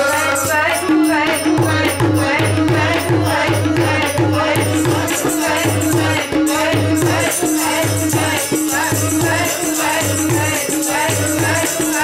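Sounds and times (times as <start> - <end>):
second voice singing: 0.0 - 1.3
tabla drumming: 0.0 - 12.0
woman singing: 0.0 - 12.0.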